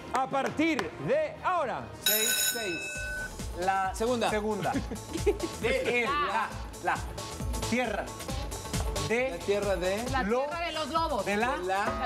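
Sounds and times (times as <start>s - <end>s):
background music: 0.0s - 12.0s
bell-like electronic chime: 2.0s - 3.5s.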